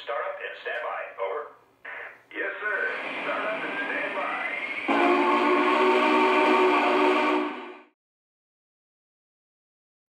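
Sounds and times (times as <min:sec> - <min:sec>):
steam hiss with rising whine: 0:02.6 - 0:08.0
steam whistle: 0:02.9 - 0:08.0.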